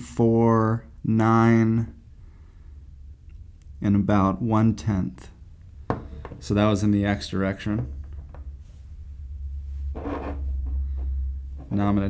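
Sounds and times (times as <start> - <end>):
steady low hum: 0.0 - 12.0
micrometer rubbing and scraping: 6.0 - 12.0.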